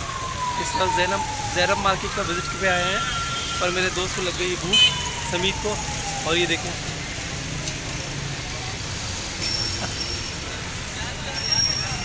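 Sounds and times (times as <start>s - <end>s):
road traffic rumble: 0.0s - 12.0s
crowd voices: 6.5s - 12.0s.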